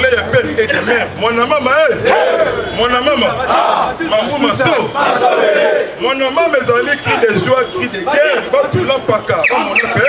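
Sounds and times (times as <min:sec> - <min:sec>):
crowd shouting: 0:00.7 - 0:10.0.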